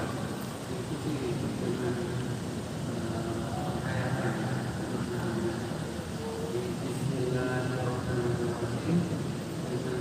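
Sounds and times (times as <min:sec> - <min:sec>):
low background hum: 0:00.0 - 0:10.0
murmur of voices: 0:00.0 - 0:10.0.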